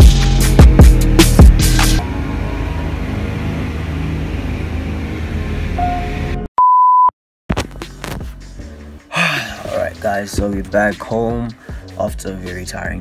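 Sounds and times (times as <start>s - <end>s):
background music: 0.0s - 2.1s, 7.6s - 13.0s
aircraft engine drone in cabin: 2.0s - 6.4s
loud high beep: 5.8s - 7.1s.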